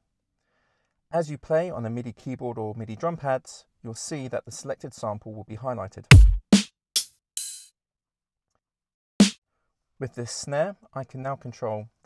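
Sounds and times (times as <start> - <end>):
drum machine hit: 6.1 - 7.6.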